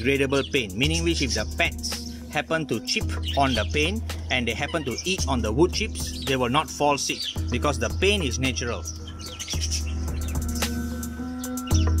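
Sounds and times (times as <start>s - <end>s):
background music with held chords: 0.0s - 12.0s
cage birds chirping: 0.0s - 12.0s.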